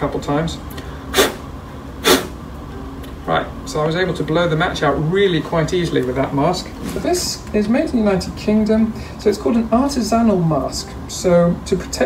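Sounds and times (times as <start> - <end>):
puffs of breath through mask: 0.8 - 1.4, 2.0 - 2.4.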